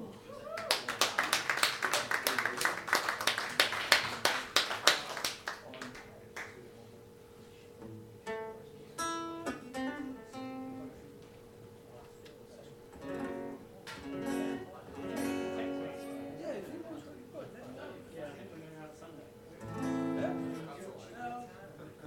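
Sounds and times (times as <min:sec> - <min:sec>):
audience applause: 0:00.4 - 0:06.5
acoustic guitar plucked notes: 0:07.8 - 0:11.0, 0:13.0 - 0:16.6, 0:19.6 - 0:20.8.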